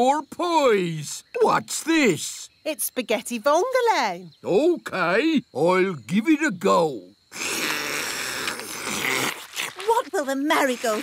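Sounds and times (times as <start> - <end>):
cartoon slurp: 7.3 - 9.9.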